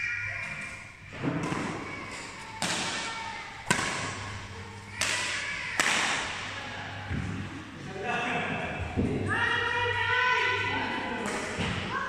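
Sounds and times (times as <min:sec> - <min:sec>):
rackets hitting shuttlecock: 0:01.2 - 0:06.5.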